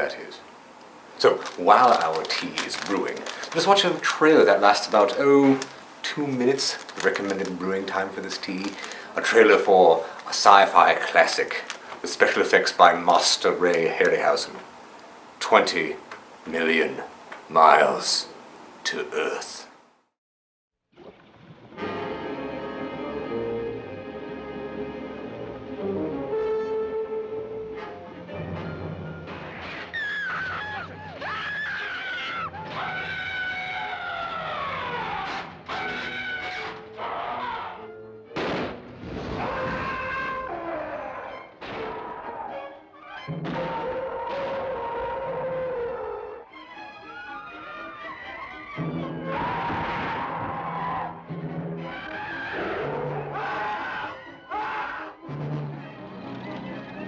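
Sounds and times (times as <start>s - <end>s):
dramatic orchestral music with brass: 21.6s - 28.9s, 55.2s - 57.0s
harsh screeching sound effects: 29.3s - 34.1s.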